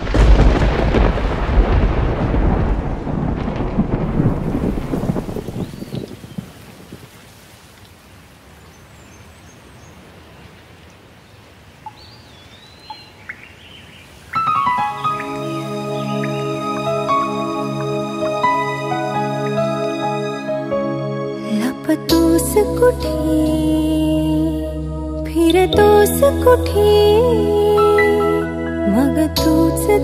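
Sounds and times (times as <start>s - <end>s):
loud rolling thunder: 0.0s - 7.0s
steady rain: 0.0s - 20.7s
faint bird chirps: 11.8s - 16.6s.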